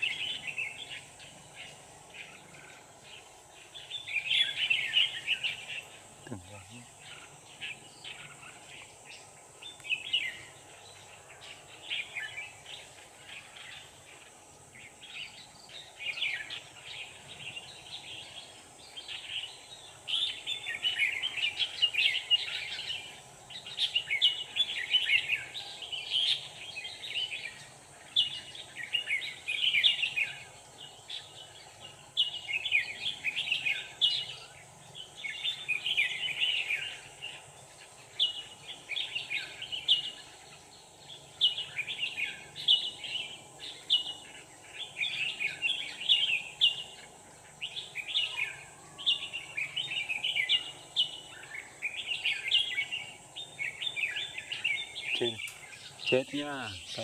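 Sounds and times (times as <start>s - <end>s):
birds singing chattering notes: 0.0s - 57.0s.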